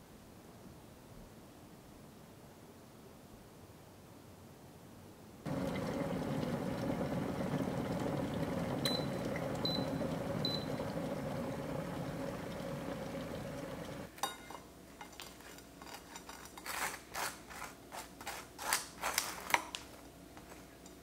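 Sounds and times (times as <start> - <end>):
kettle water bubbling: 5.5 - 14.1.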